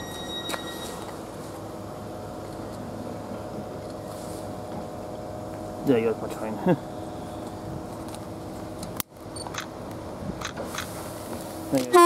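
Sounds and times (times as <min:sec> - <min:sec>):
electric train humming: 0:00.0 - 0:12.0.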